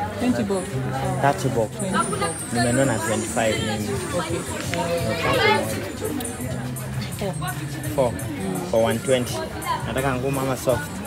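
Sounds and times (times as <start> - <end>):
music playing: 0.0 - 11.0
people talking: 0.0 - 11.0.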